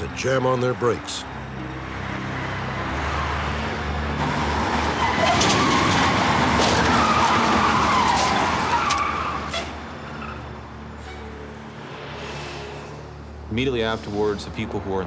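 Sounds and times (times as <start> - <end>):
truck tyres skidding and squealing: 0.0 - 15.0.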